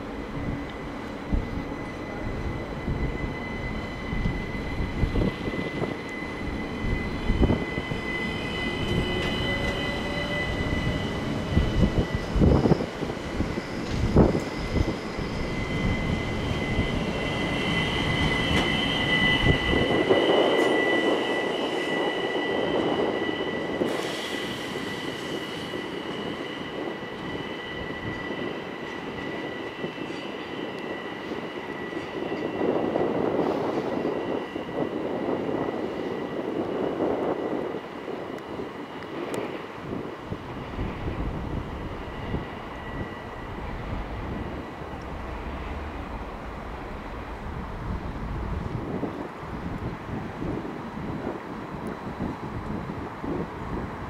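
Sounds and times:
train wheels squealing: 0:00.0 - 0:54.0
wheels rumbling on rail: 0:00.0 - 0:54.0.

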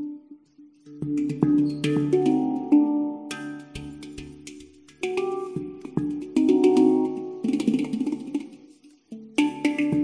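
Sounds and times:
instrumental music with ringing notes: 0:00.0 - 0:10.0.

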